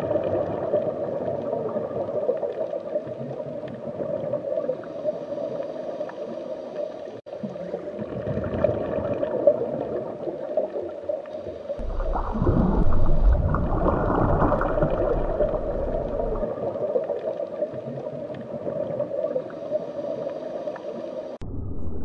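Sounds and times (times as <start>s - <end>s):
muffled underwater rushing and gurgling: 0.0s - 22.0s.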